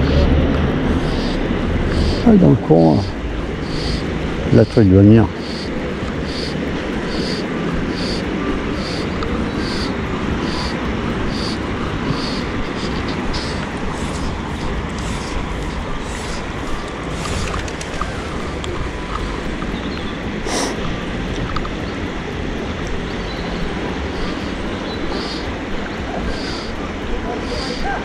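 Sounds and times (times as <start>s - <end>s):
wind on microphone: 0.0s - 28.0s.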